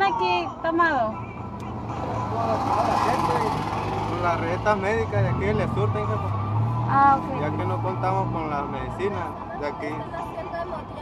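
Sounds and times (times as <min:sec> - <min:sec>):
motor vehicle noise: 0:00.0 - 0:11.0.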